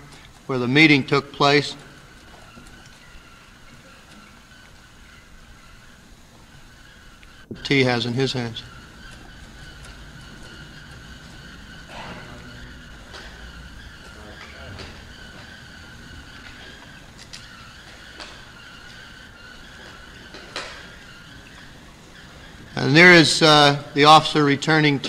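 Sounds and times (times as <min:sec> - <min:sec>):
faint high whine: 0:00.0 - 0:25.0
steady hiss: 0:00.0 - 0:25.0.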